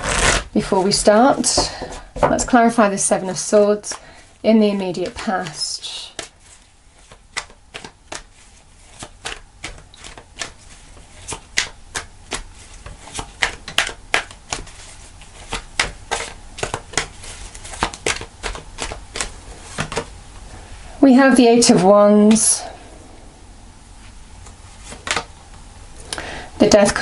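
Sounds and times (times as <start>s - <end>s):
cards being shuffled: 0.0s - 2.0s, 4.7s - 20.1s, 24.4s - 25.3s.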